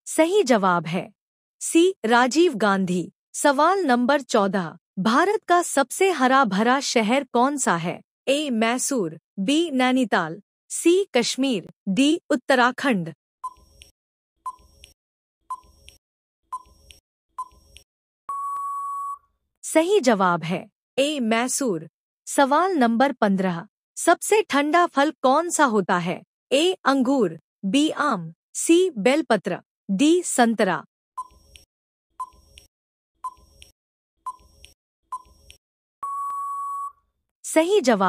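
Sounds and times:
long electronic beep: 18.3 - 19.2, 36.0 - 37.0
short beep-like tick: 36.0 - 37.0.

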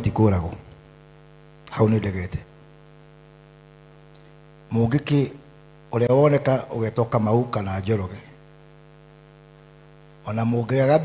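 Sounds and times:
man speaking into microphone: 0.0 - 0.8, 1.7 - 2.5, 4.7 - 8.4, 10.2 - 11.0
electrical mains hum: 0.0 - 11.0.

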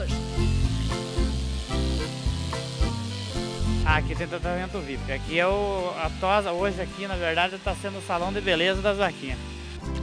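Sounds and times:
electric clippers hissing: 0.0 - 10.0
music with steady beat: 0.0 - 10.0.

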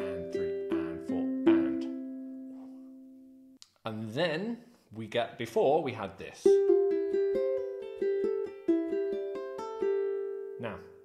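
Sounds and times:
ukulele plucked arpeggio: 0.0 - 3.5, 6.4 - 11.0.

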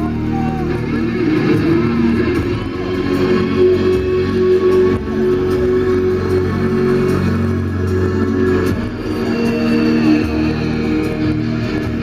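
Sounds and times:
bass guitar: 0.0 - 12.0
distorted electric guitars: 0.0 - 12.0.

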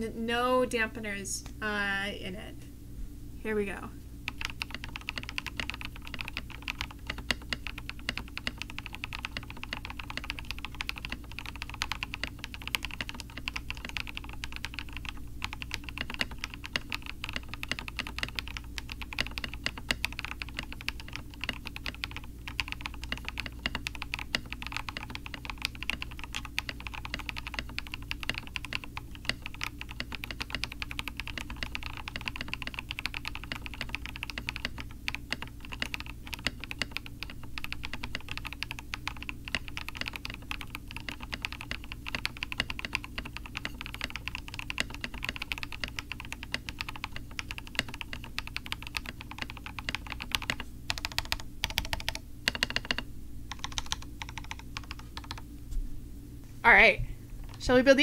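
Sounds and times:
mechanical keyboard typing: 4.3 - 55.4.

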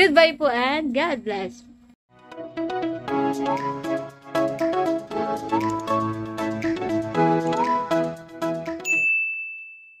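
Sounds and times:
background music: 2.1 - 8.9
notification bell chime: 8.8 - 10.0.

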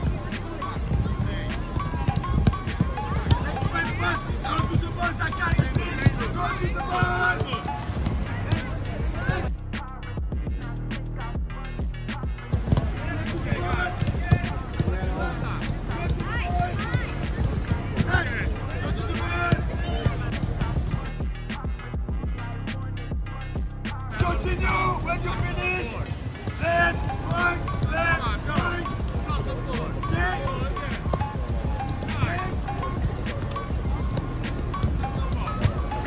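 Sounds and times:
players shouting: 0.0 - 9.5, 12.5 - 21.7, 23.9 - 36.0
soccer ball kick thuds: 0.0 - 9.6, 12.3 - 22.4, 24.1 - 36.0.

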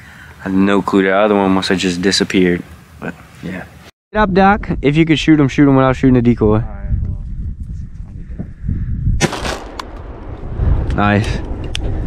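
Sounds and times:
shotgun shot: 9.2 - 10.9.

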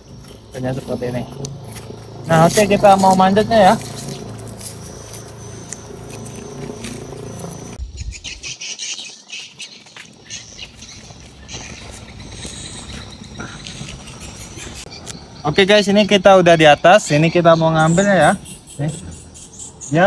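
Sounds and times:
high insect buzz: 0.0 - 8.1
birds chirping: 0.0 - 20.0.

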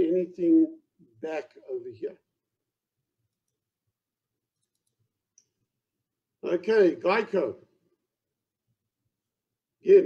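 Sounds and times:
computer mouse clicks: 4.6 - 5.5.

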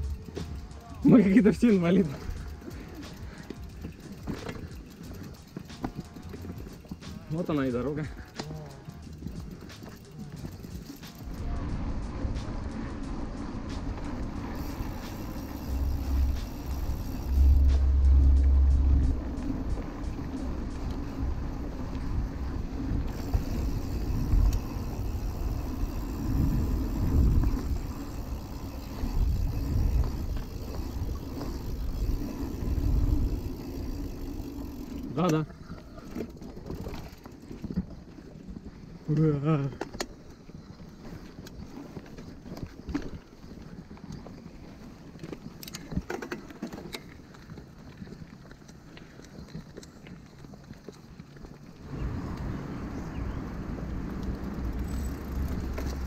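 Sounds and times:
bike tyres rolling on dirt: 0.0 - 56.0
wind rumbling on microphone: 8.0 - 56.0.

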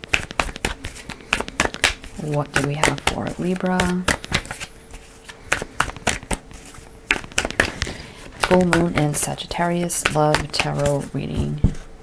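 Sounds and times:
cards being shuffled: 0.0 - 11.8.

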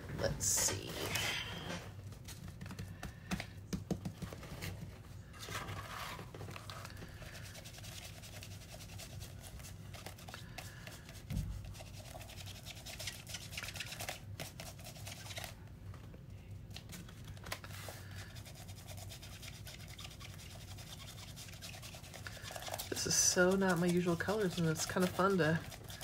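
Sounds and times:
foam dauber dabbing paint: 18.4 - 26.0.

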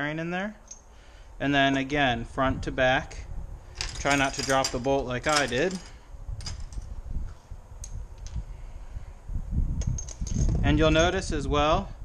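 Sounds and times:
metal tools clicking and clinking: 3.8 - 6.9, 9.8 - 10.5.

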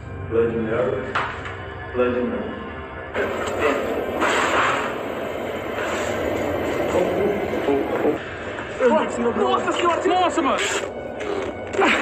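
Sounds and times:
horror film music: 0.0 - 12.0.

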